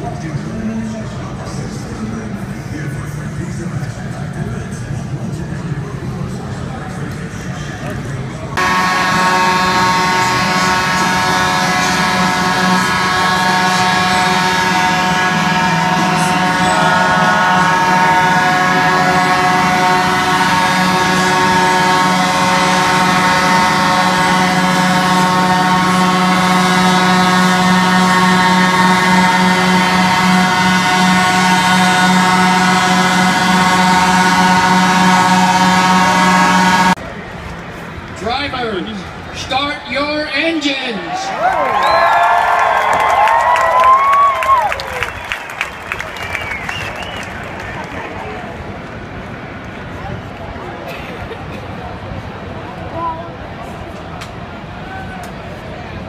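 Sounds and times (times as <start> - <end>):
trucks mechanical drone: 0.0 - 39.6.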